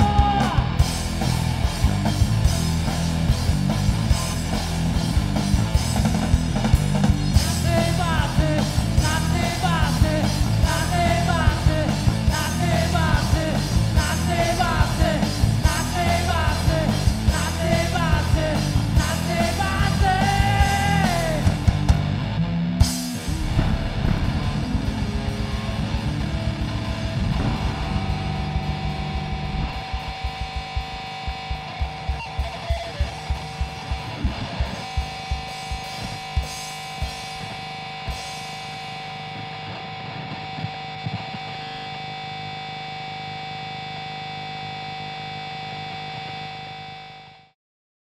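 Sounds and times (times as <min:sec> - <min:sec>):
rock band playing: 0:00.0 - 0:47.1
held ringing guitar tone: 0:22.1 - 0:47.2
drum hits: 0:23.0 - 0:38.4.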